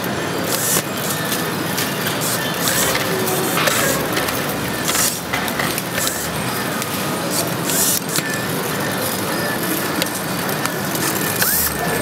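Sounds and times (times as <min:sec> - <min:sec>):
assembly line noise: 0:00.0 - 0:12.0.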